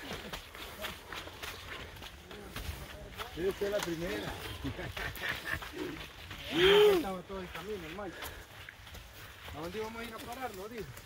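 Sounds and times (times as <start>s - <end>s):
footsteps on dirt path: 0.0s - 11.0s
men talking: 0.0s - 11.0s.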